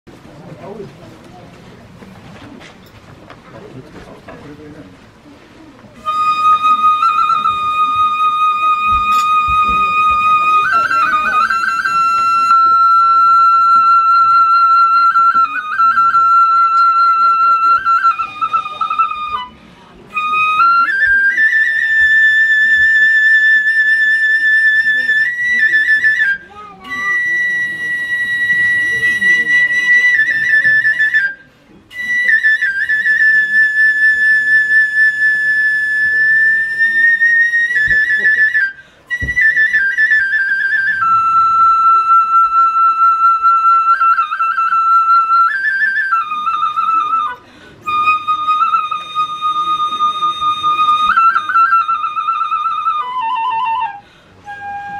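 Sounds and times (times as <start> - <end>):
bamboo flute long high note: 6.0 - 54.9.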